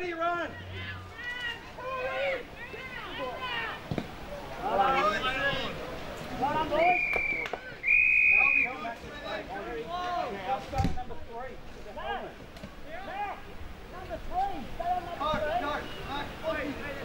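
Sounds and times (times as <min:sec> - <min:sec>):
indistinct shouting: 0:00.0 - 0:03.8
whistle blasts: 0:06.8 - 0:08.8.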